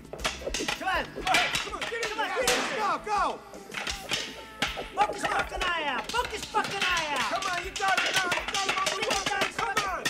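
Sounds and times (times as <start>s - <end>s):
men yelling: 0.7s - 10.0s.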